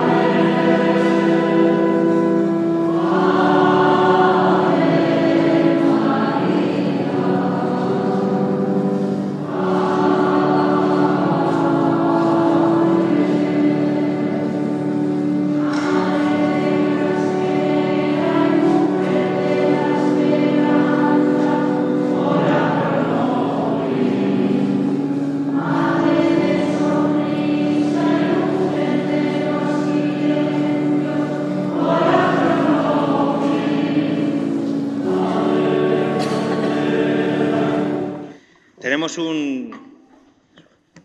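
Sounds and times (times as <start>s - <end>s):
church choir singing a hymn: 0.0s - 38.5s.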